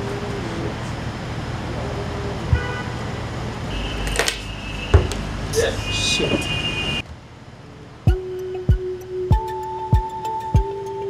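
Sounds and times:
high whine: 0.0 - 7.0
traffic noise: 0.0 - 11.0
sharp thump: 4.3 - 5.3
loud knock: 4.9 - 5.3.

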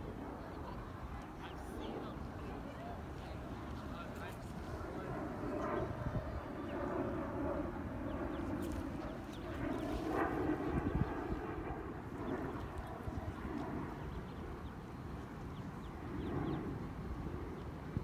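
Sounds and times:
faint background voices: 0.0 - 14.6.

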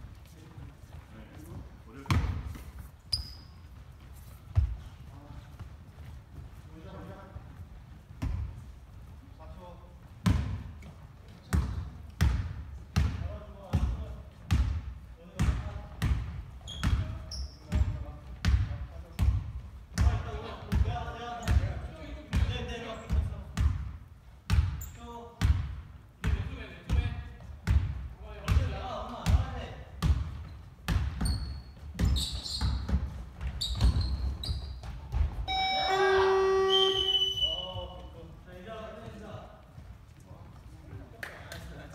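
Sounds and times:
players' voices echoing: 35.1 - 41.9
loud steady tone: 35.5 - 37.6.

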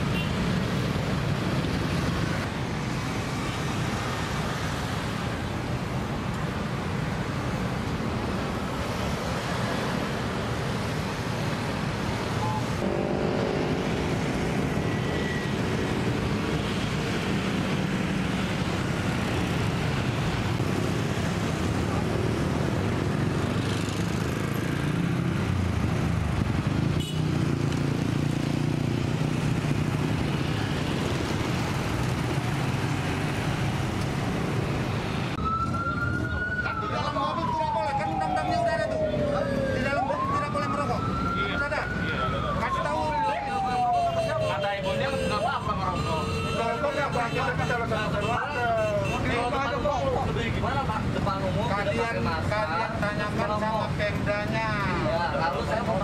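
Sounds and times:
passing cars and motorbikes: 0.0 - 56.0
siren wailing: 35.3 - 47.0.

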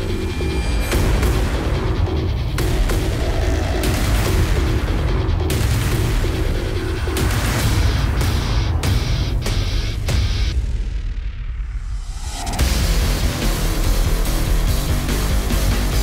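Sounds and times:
dramatic soundtrack music: 0.0 - 16.0.

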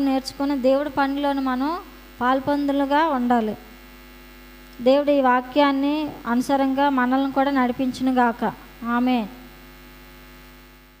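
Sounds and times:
woman's voice: 0.0 - 3.7, 4.8 - 9.5
electrical mains hum: 0.0 - 11.0.

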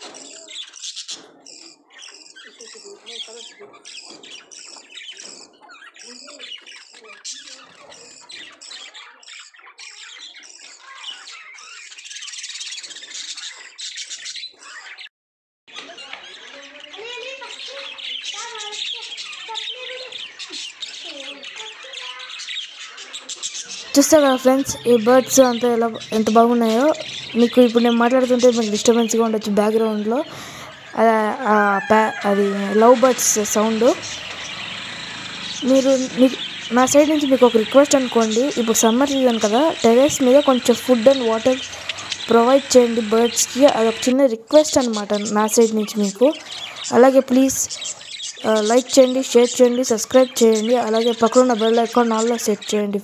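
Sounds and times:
budgerigars chattering and chirping: 0.0 - 15.1, 15.7 - 53.0
person speaking drawn-out syllables: 23.9 - 34.2, 35.6 - 44.8.

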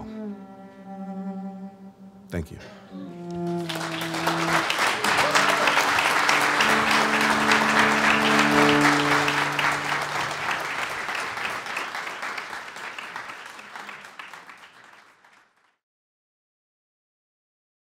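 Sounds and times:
cello sustained notes: 0.0 - 12.1
audience applauding: 3.3 - 15.8.

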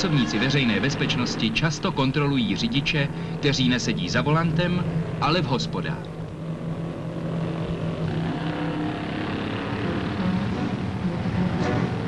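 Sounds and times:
motorcycle engines running: 0.0 - 12.0.

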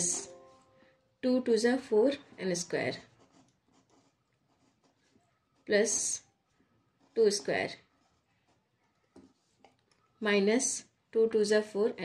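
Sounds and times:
pen scratching on paper: 1.8 - 9.9.

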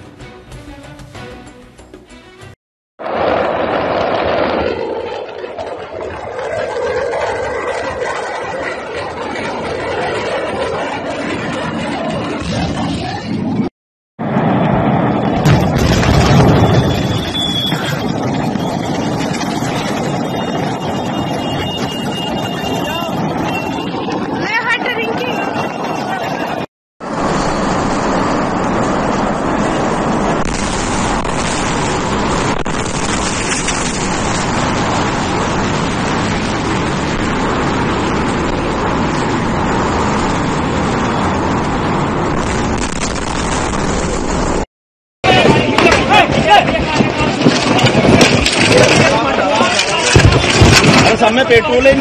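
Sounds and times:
wind on microphone: 3.0 - 44.6
fire rumbling: 3.0 - 52.0
roadside ambience: 3.0 - 52.0.

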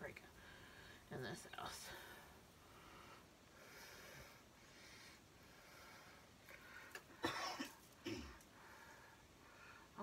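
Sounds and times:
soft breathing sounds: 0.2 - 7.2, 7.8 - 10.0.

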